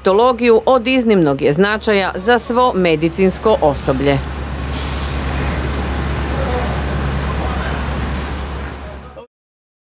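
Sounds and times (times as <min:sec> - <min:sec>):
motor traffic rumble: 0:00.0 - 0:09.3.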